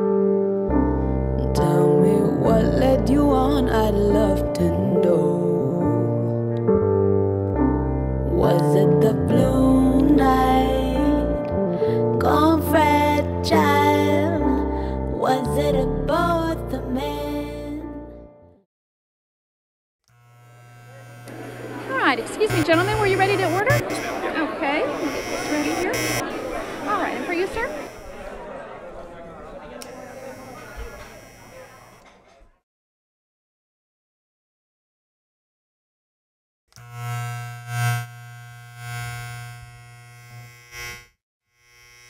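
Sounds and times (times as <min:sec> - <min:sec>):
electrical hum and buzz: 0:20.1 - 0:28.4, 0:29.7 - 0:32.6, 0:36.8 - 0:42.0.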